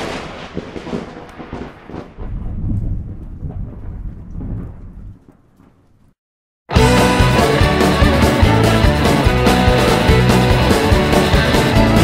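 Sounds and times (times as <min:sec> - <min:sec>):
loud thunderclap: 0:00.0 - 0:05.5
low rolling thunder rumble: 0:00.0 - 0:06.1.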